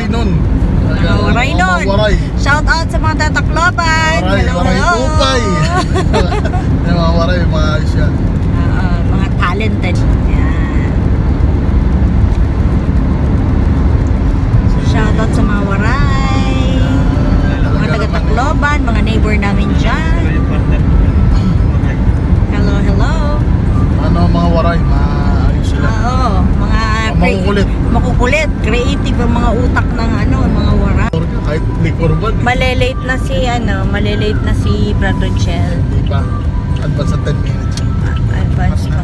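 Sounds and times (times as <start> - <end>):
car road and engine rumble: 0.0 - 39.0
voice with wavering pitch: 0.8 - 7.6, 14.7 - 39.0.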